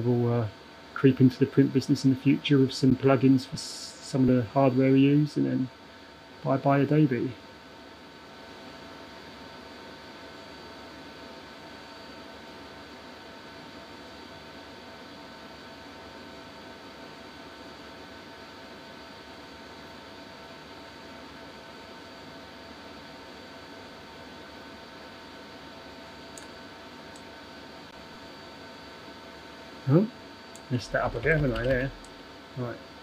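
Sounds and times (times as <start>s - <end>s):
steady background hiss: 0.0s - 33.0s
faint high whining tones: 25.9s - 33.0s.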